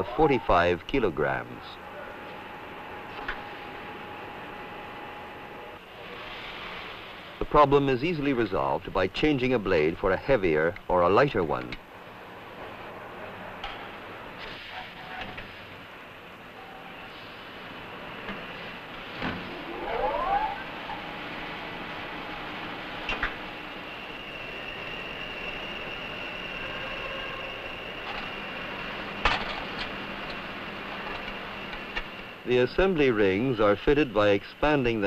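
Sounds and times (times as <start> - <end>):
rising whine: 17.8 - 33.0.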